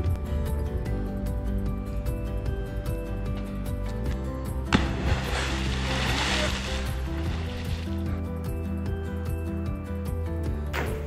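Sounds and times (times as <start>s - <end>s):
background music: 0.0s - 11.0s
splash into river: 4.7s - 8.1s
spraying water: 4.8s - 8.1s.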